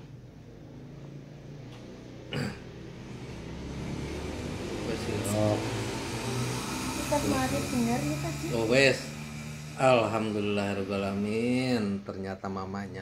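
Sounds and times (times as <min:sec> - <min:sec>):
vehicle passing: 0:00.0 - 0:13.0.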